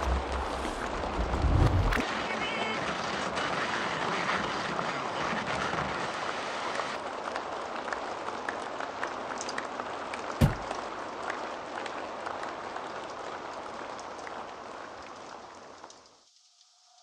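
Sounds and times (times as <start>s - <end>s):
faint crackles: 0.0s - 2.1s
rain hiss: 0.0s - 17.0s.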